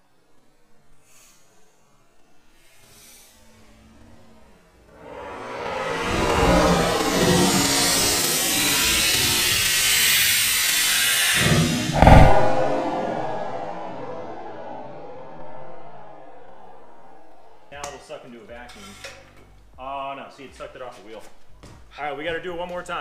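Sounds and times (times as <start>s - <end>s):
loud low thump: 11.4s - 17.7s.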